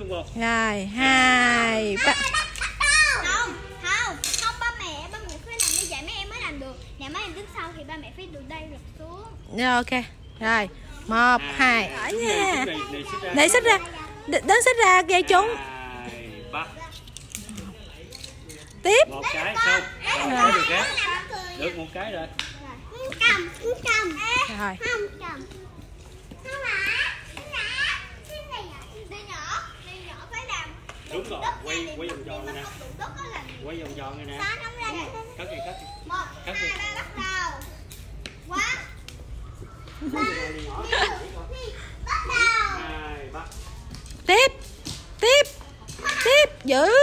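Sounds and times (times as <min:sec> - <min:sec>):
children calling out: 0:02.0 - 0:05.0, 0:38.5 - 0:43.0.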